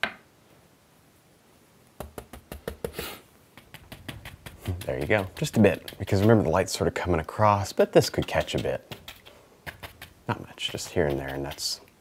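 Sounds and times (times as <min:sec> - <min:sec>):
brush tapping on canvas: 0:02.0 - 0:06.9, 0:08.0 - 0:11.8
brush scrape: 0:02.9 - 0:07.0, 0:08.0 - 0:11.8.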